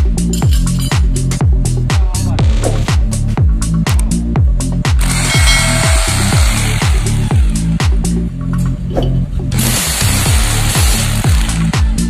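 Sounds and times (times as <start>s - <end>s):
electronic dance music: 4.9s - 8.2s, 9.6s - 12.0s
electric drill grinding into concrete: 5.0s - 8.2s, 9.5s - 12.0s.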